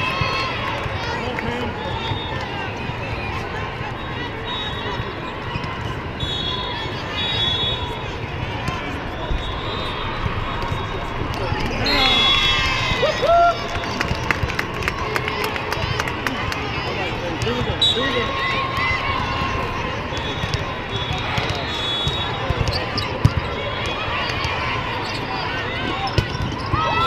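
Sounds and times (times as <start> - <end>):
sneaker squeaks: 4.0 - 8.0, 17.4 - 27.0
overlapping voices: 10.2 - 17.1.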